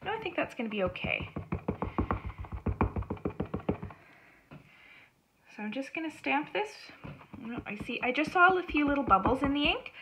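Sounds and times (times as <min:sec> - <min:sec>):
stamp tapping on ink pad: 0:00.9 - 0:04.0, 0:07.0 - 0:09.8.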